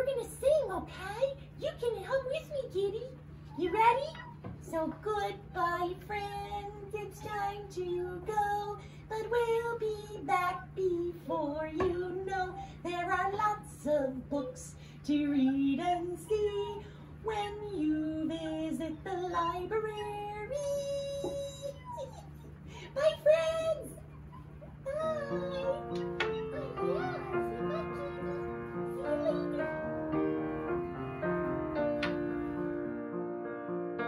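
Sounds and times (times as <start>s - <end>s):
high childlike voice singing: 4.7s - 22.4s, 24.8s - 29.9s.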